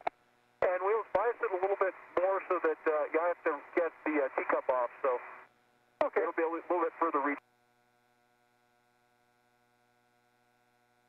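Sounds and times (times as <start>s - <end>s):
speech over radio: 0.6s - 5.4s, 6.0s - 7.4s.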